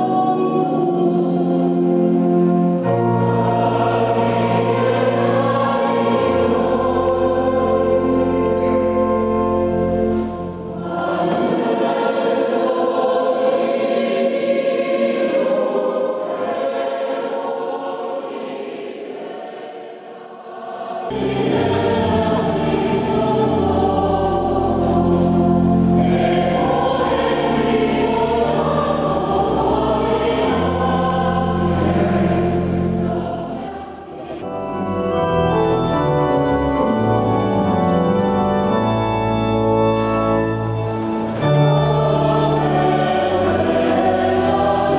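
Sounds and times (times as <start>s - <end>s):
organ playing: 0.0s - 14.0s, 21.1s - 44.9s
choir singing a hymn: 0.0s - 44.9s.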